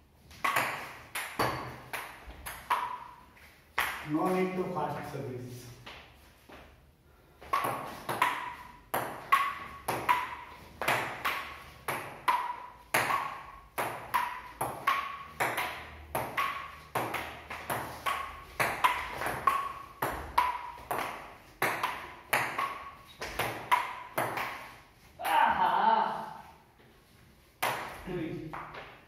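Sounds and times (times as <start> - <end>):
table tennis ball hits: 0.3 - 4.4, 7.4 - 25.6, 27.6 - 29.0.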